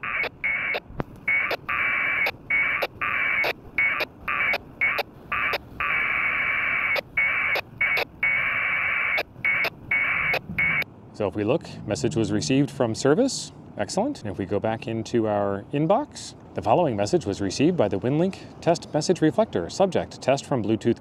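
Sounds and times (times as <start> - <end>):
radio keying clicks: 0.0 - 5.6, 6.9 - 8.4, 9.1 - 10.9
buzzy two-tone data bursts: 0.0 - 10.8.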